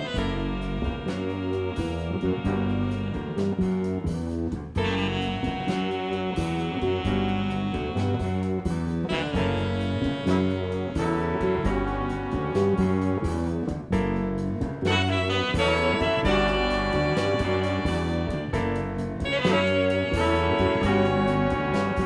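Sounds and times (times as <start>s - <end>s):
drum kit steady beat: 0.0s - 22.0s
electric bass and guitar: 0.0s - 22.0s
horn section holding chords: 0.0s - 22.0s.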